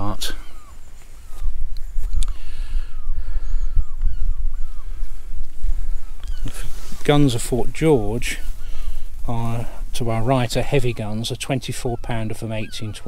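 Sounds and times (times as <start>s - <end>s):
faint falling bird calls: 0.0s - 13.0s
wind buffeting microphone: 0.0s - 13.0s.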